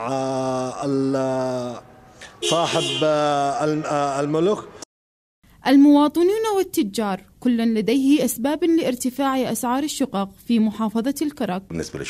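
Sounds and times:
man holding vowel sounds: 0:00.0 - 0:04.3.

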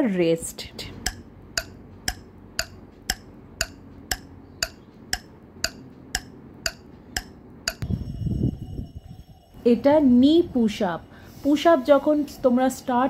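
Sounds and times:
clock ticking: 0:00.9 - 0:07.8.

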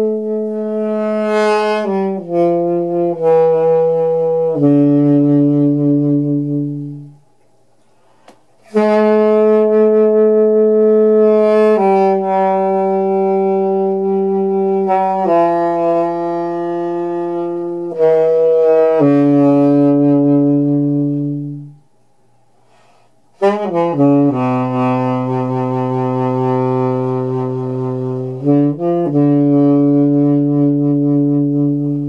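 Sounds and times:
saxophone holding low note: 0:00.0 - 0:07.2, 0:08.6 - 0:21.8, 0:23.4 - 0:32.0.

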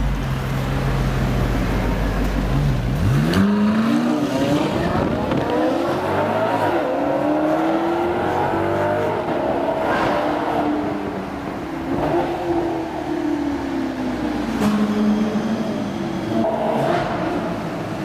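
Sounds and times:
car engine revving: 0:00.4 - 0:18.0.

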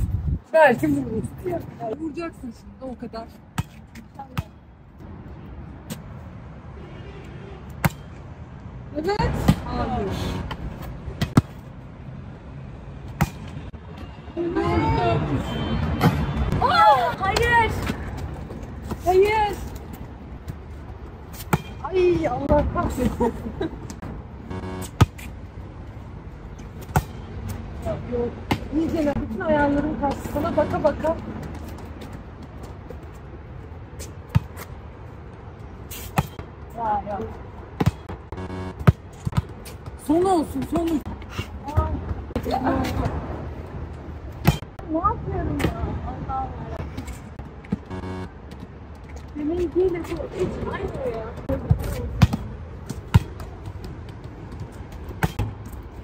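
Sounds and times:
volleyball bouncing on court: 0:51.0 - 0:55.6.

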